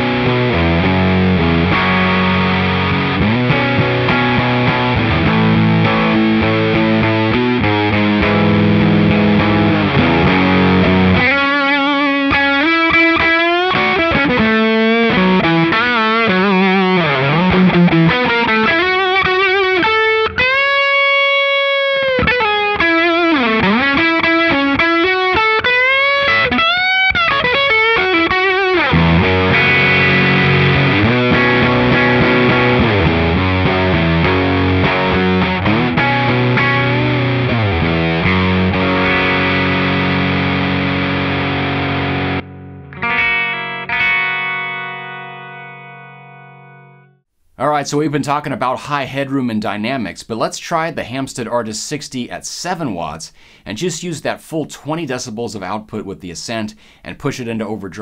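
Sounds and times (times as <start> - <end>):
overdriven electric guitar: 0.0 - 47.2.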